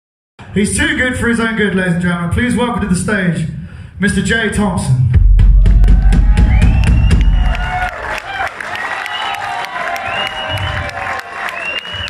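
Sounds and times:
crash of drums and bass: 0:05.0 - 0:08.1
rock band playing: 0:05.4 - 0:08.2
crowd cheering: 0:05.5 - 0:12.0.

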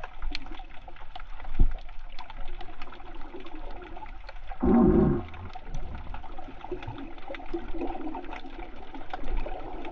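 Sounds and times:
underwater clicks and crackles: 0:00.0 - 0:09.9
underwater rush of water: 0:00.0 - 0:09.9.

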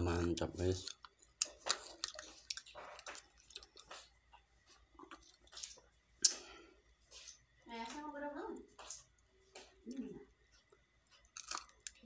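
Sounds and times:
person chewing with wet clicks: 0:00.1 - 0:07.9, 0:08.7 - 0:12.0.

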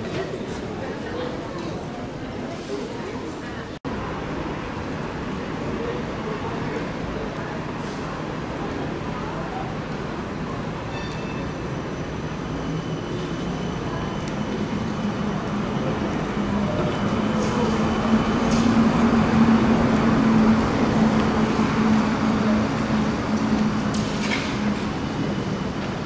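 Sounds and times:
trolleybus electric hum: 0:00.0 - 0:26.0.

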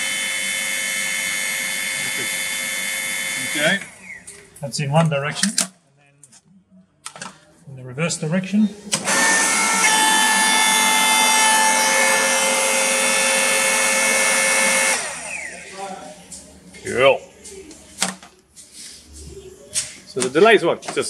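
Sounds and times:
hydraulic pump motor whine: 0:00.0 - 0:04.6, 0:08.8 - 0:15.8.

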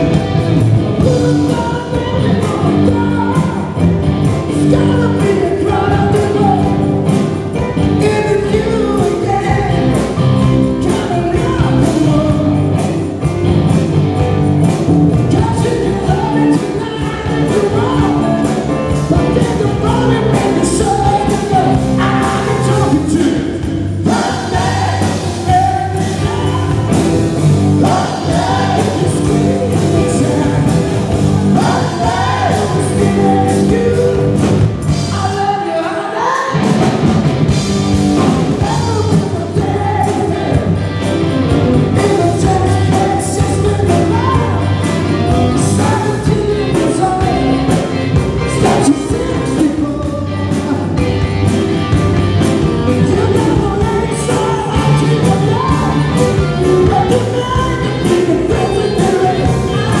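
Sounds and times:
bass guitar: 0:00.0 - 1:00.0
electric guitar: 0:00.0 - 1:00.0
live rock band playing: 0:00.0 - 1:00.0
man singing: 0:00.8 - 0:13.1, 0:15.1 - 0:36.9, 0:38.2 - 0:51.6, 0:52.8 - 1:00.0.

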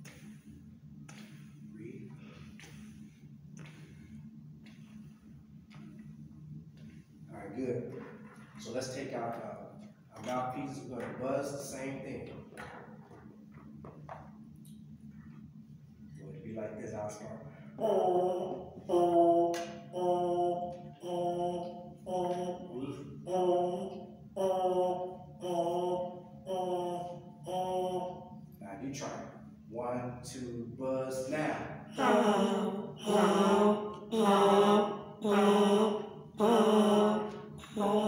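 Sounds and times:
brass mouthpiece buzzing: 0:17.8 - 0:28.4.

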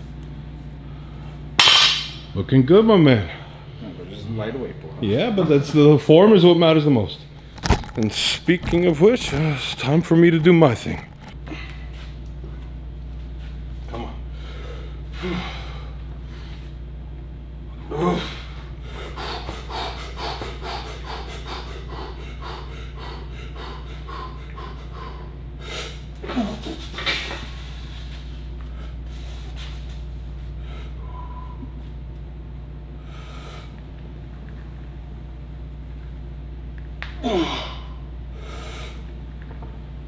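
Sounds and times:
low hum: 0:00.0 - 0:40.0
man breathing forcefully: 0:14.3 - 0:16.6, 0:18.2 - 0:29.8, 0:30.4 - 0:31.6, 0:33.0 - 0:33.8, 0:37.2 - 0:39.1.

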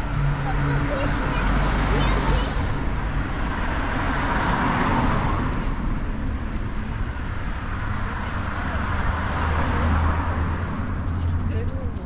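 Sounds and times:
cars passing on road: 0:00.0 - 0:12.0.

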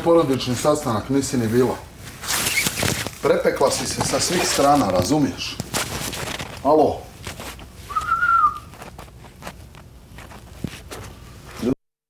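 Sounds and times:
bedding rustling: 0:00.2 - 0:11.8
person whistling: 0:07.9 - 0:08.7.

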